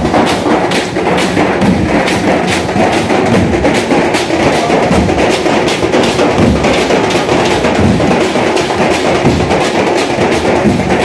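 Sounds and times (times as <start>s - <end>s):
bass drum beats: 0.0s - 11.0s
drum band playing: 0.0s - 11.0s.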